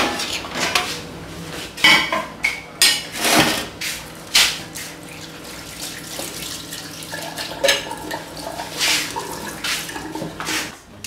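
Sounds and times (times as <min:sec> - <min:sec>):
tap water running into sink: 0:04.6 - 0:10.7.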